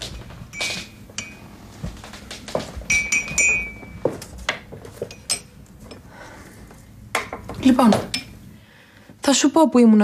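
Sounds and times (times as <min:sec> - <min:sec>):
crockery and glassware clinking: 0:00.5 - 0:01.5, 0:02.9 - 0:04.2, 0:04.9 - 0:06.1, 0:08.0 - 0:08.4.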